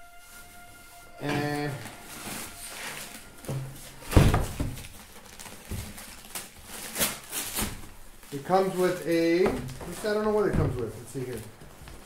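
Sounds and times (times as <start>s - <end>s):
heavy thump: 9.4s - 10.9s.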